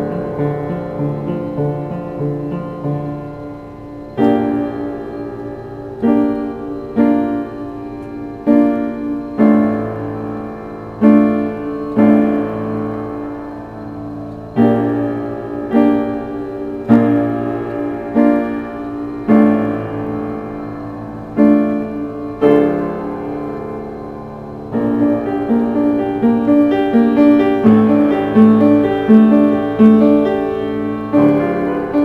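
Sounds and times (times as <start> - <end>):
slow dark piano chords: 0.0 - 32.0.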